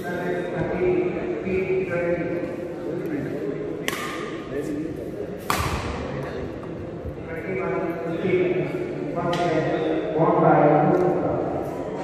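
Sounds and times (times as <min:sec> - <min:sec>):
people talking: 0:00.0 - 0:12.0
racket striking shuttlecock: 0:03.8 - 0:04.4, 0:05.4 - 0:06.1.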